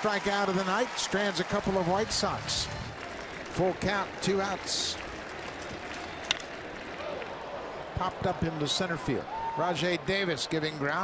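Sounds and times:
ballpark crowd: 0:00.0 - 0:11.0.

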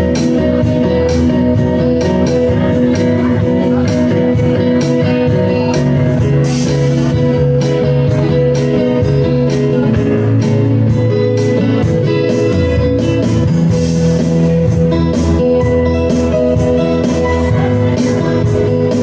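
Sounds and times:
acoustic guitar: 0:00.0 - 0:19.0
keyboard: 0:00.0 - 0:19.0
steady beat: 0:00.0 - 0:19.0.

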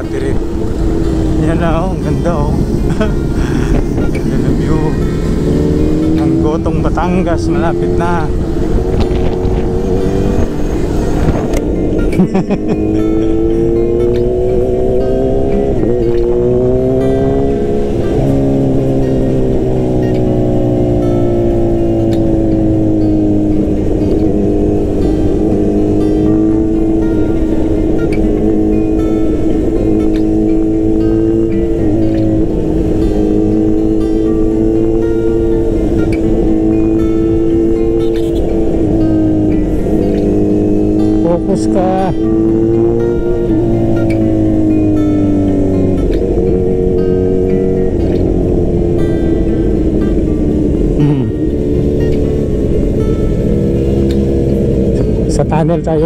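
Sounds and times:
background music: 0:00.0 - 0:56.0
motorcycle engine revving: 0:00.0 - 0:56.0.

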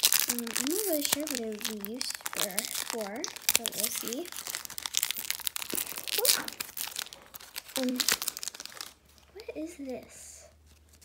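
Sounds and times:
plastic pouch crackling: 0:00.0 - 0:09.8, 0:10.5 - 0:11.0.

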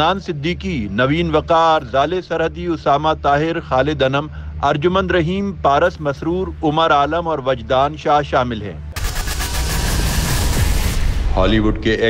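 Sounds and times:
trailer music: 0:08.8 - 0:12.0
deep rumble: 0:09.0 - 0:12.0
dense rushing noise: 0:09.0 - 0:12.0.

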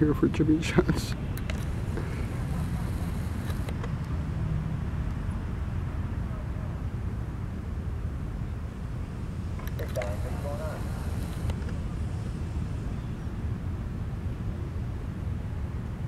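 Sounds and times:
outboard motors rumbling: 0:01.4 - 0:03.7.

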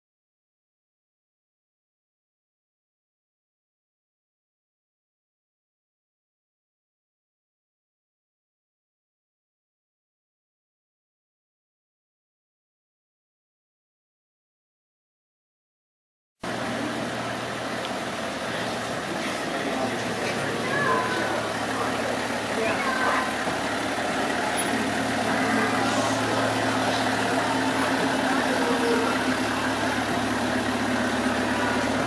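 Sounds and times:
road train engine droning: 0:16.4 - 0:32.0
people's voices: 0:16.5 - 0:32.0.

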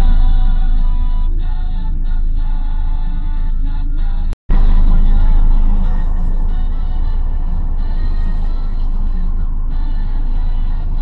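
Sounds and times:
car engine and tyre rumble: 0:00.0 - 0:11.0
music in a car: 0:00.0 - 0:11.0.

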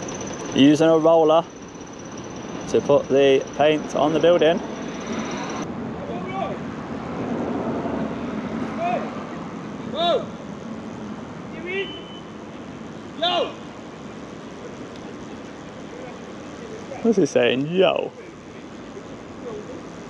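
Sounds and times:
steady background hum: 0:00.0 - 0:07.4, 0:08.0 - 0:20.0.

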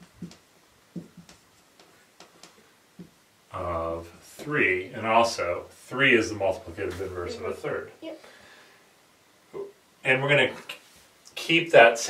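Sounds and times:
marker writing on whiteboard: 0:00.0 - 0:03.1.

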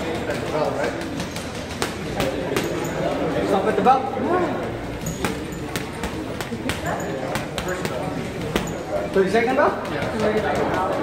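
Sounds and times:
gloves hitting punching bag: 0:00.0 - 0:03.7, 0:04.9 - 0:11.0.

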